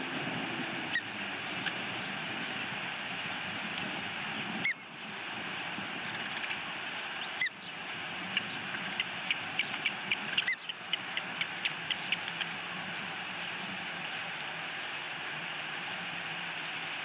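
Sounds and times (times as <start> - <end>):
steady background hiss: 0.0 - 17.0
chicks peeping: 8.4 - 12.5.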